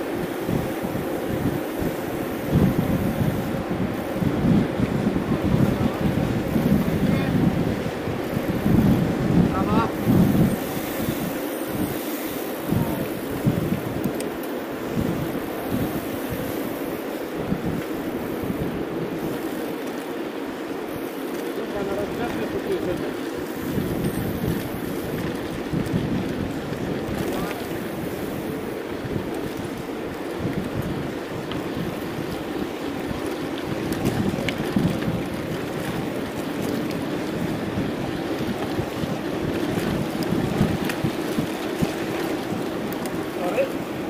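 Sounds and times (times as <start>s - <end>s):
wind buffeting microphone: 0.0s - 44.0s
faint clicks: 14.0s - 14.6s.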